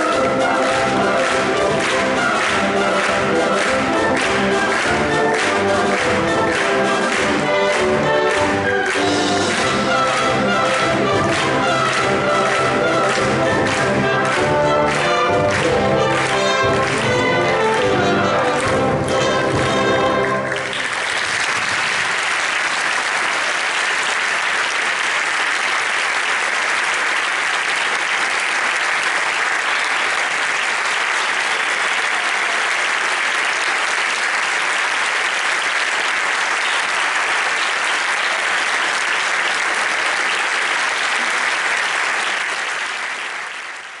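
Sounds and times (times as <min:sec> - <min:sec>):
audience applause: 0:00.0 - 0:44.0.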